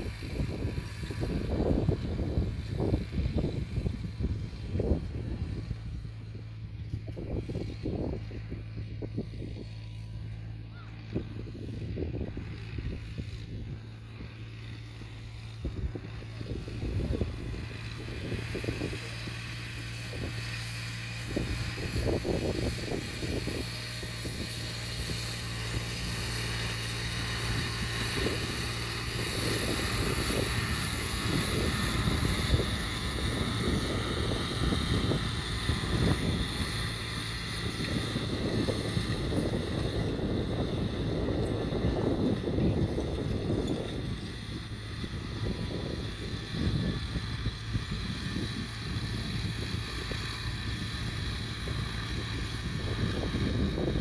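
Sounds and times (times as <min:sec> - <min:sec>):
tractor diesel engine running: 0:00.0 - 0:54.0
wind buffeting microphone: 0:00.0 - 0:54.0.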